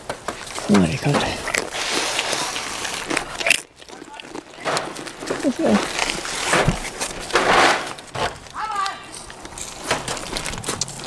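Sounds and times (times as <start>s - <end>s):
light clicks and crackling: 0.0s - 11.0s.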